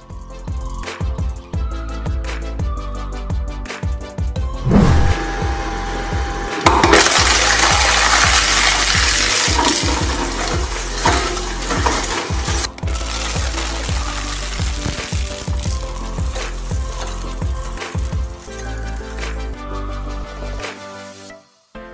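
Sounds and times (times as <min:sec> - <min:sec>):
shredder blades crunching plastic: 0:06.5 - 0:19.6.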